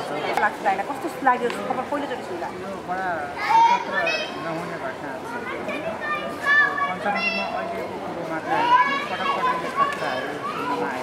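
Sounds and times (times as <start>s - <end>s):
children shouting at play: 3.4s - 11.0s.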